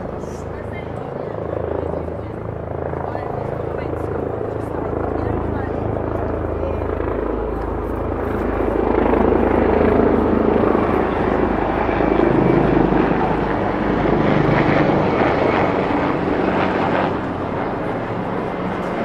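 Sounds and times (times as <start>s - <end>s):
helicopter flying overhead: 0.0s - 19.0s.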